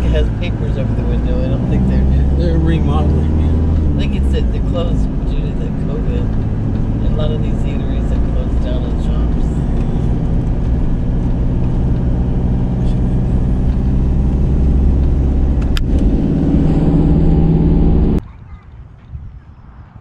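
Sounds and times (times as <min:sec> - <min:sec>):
van engine and tyre drone: 0:00.0 - 0:18.2.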